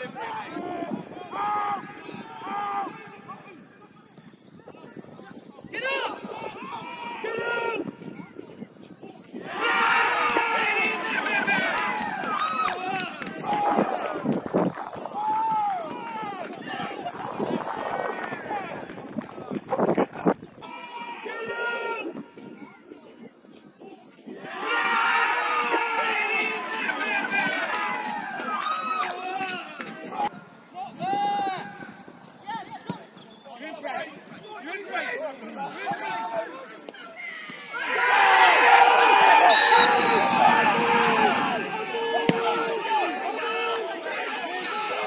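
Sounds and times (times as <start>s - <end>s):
players shouting: 0.0s - 3.6s, 9.1s - 18.9s, 24.4s - 30.3s, 34.8s - 45.0s.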